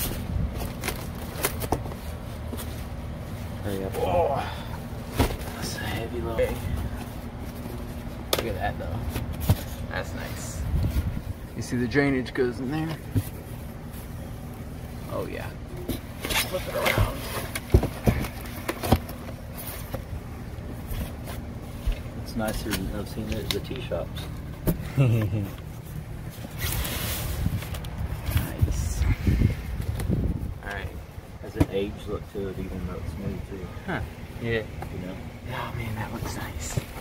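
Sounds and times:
low steady rumble: 0.0 - 37.0.

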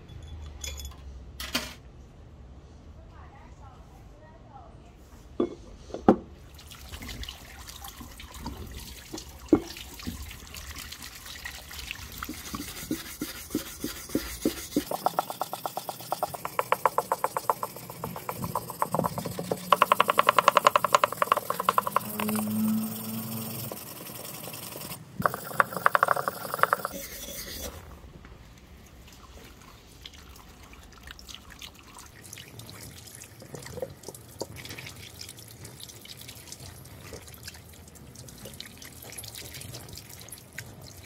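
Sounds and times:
brush scrubbing metal: 12.0 - 27.8
axe head knocking on wood: 16.1 - 22.2.

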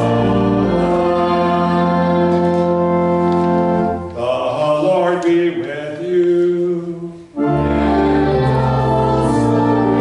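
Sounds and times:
organ chord: 0.0 - 5.0, 7.4 - 10.0.

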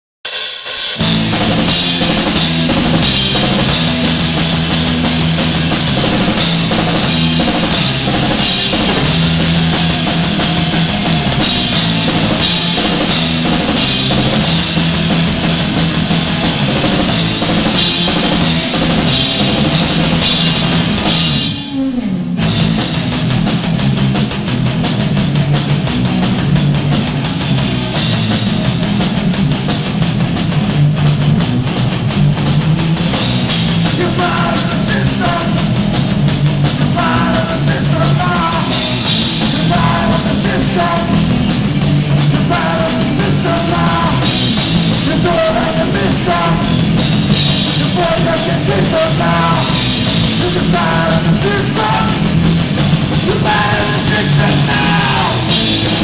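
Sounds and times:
drum kit: 0.2 - 56.0
rock band playing: 0.3 - 56.0.

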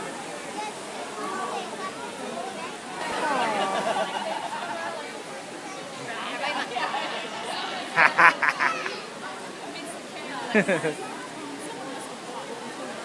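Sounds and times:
crowd chatter outdoors: 0.0 - 13.0.

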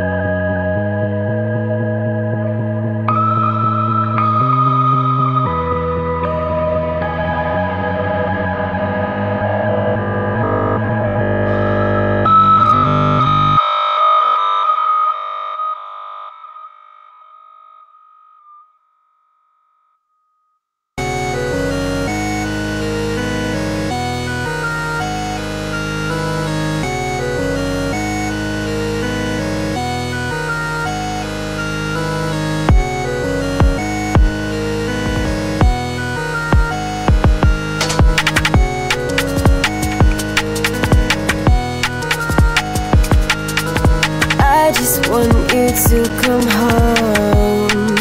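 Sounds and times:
lingering high synthesizer tone: 0.0 - 13.8
electronic synth music with bass: 0.0 - 14.6, 21.0 - 48.0.

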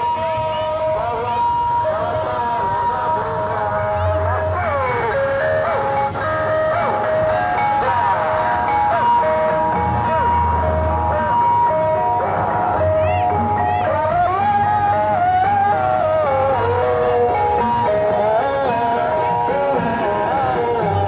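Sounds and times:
loud music over loudspeakers: 0.0 - 21.0.

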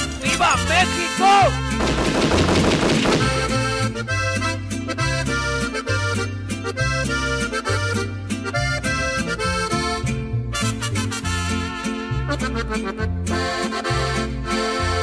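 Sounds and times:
accordion melody: 0.0 - 15.0
dense burst of noise: 1.8 - 3.5
stepping bass line: 1.8 - 4.3.

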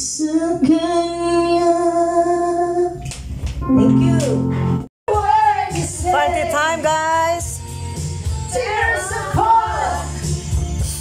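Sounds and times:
woman singing into a microphone: 0.0 - 3.0
backing track music: 3.6 - 11.0.

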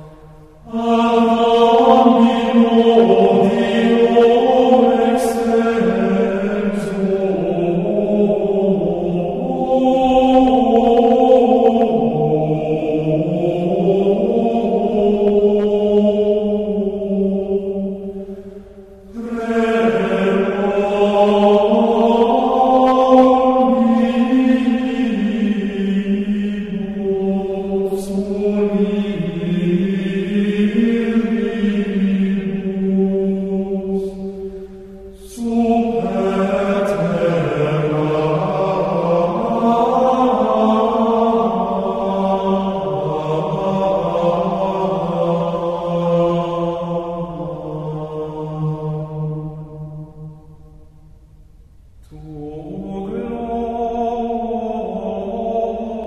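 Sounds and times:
voices singing plainchant: 0.0 - 49.3.

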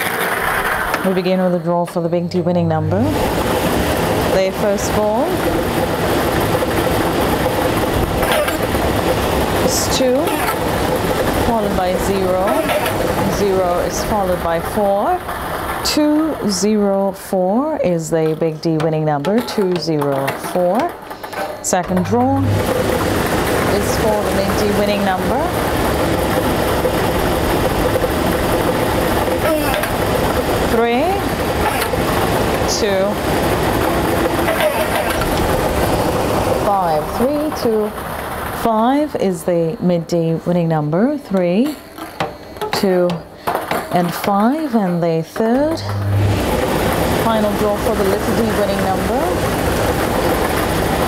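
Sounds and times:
lottery machine balls churning: 0.0 - 51.0.

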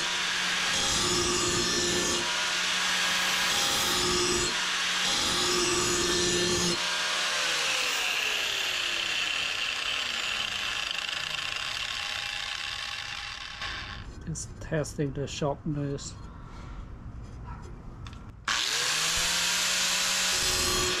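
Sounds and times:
angle grinder grinding steel: 0.0 - 14.3, 18.5 - 21.0
grinder motor whine spinning down: 18.5 - 19.7.

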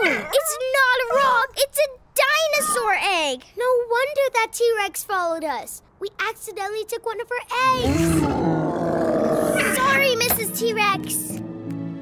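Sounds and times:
cartoon dinosaur roar: 7.6 - 10.0.

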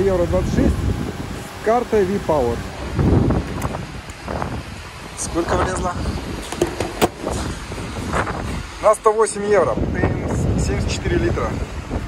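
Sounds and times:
steady background noise: 0.0 - 12.0
fuel nozzle clunk: 6.3 - 7.6.

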